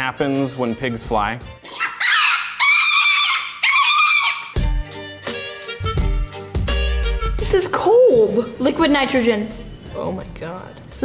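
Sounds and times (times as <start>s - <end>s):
small pig squealing: 1.6s - 4.6s
upbeat music with bass beat: 4.6s - 7.6s.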